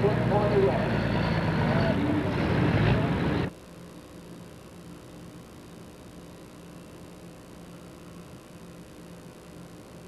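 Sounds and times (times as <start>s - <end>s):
announcer's voice: 0.0s - 1.0s
tractor diesel engine running loud: 0.0s - 3.5s
faint steady hum: 0.0s - 10.0s.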